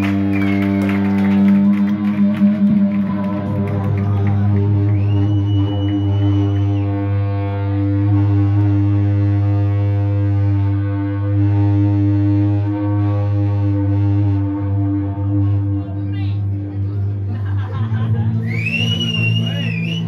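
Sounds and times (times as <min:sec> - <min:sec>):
high feedback whistle: 0:00.0 - 0:03.0, 0:04.5 - 0:09.8, 0:18.4 - 0:20.0
droning electric guitars and bass: 0:00.0 - 0:20.0.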